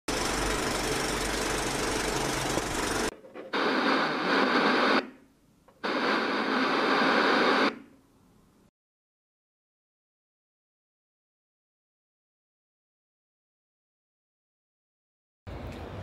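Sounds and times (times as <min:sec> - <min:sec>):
crackly old film noise: 0:00.2 - 0:05.1, 0:05.8 - 0:07.8
tv static hiss: 0:03.4 - 0:05.2, 0:05.8 - 0:07.8.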